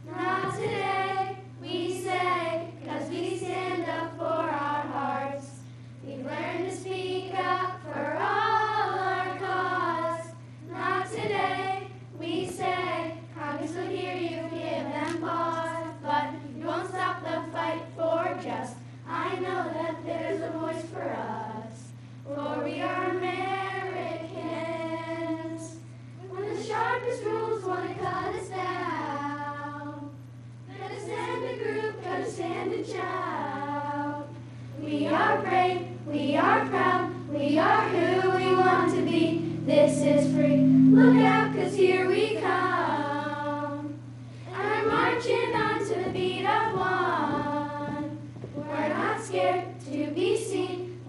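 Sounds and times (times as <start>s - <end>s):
children singing: 34.9s - 44.0s.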